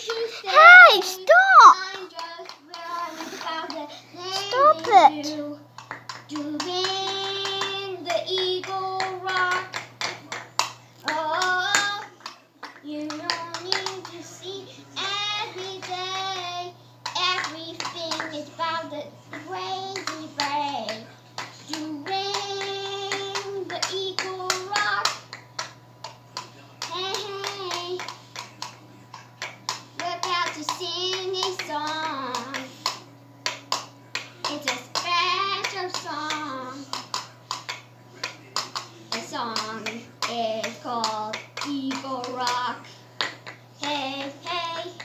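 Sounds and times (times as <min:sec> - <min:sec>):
girl singing held notes: 0:00.0 - 0:05.6.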